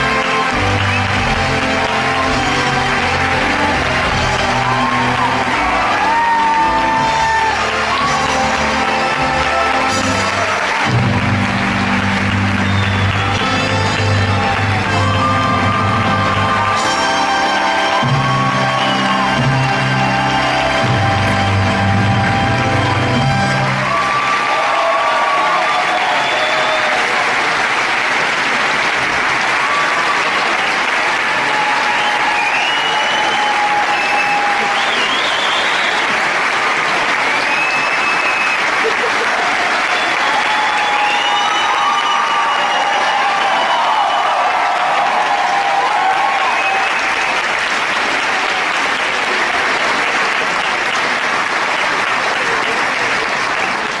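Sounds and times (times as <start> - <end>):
cheers and whoops: 0.0 - 27.6, 29.2 - 51.0
audience applauding: 0.0 - 54.0.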